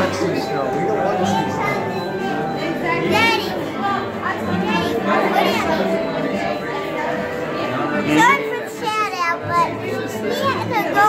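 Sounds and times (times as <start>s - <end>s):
children talking and calling out: 0.0s - 11.0s
people talking: 0.0s - 11.0s.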